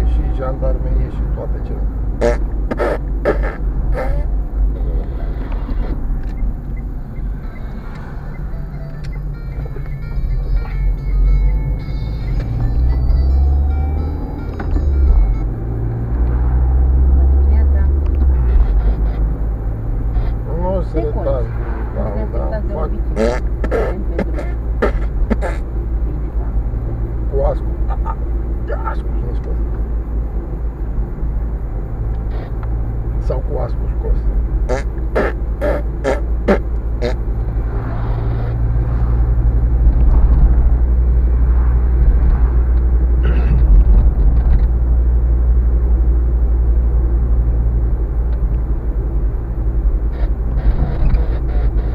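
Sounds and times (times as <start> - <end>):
car engine and road noise: 0.0 - 51.9.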